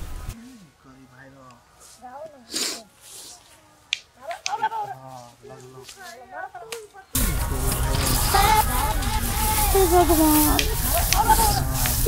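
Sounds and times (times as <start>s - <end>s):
quiet speech: 0.4s - 12.0s.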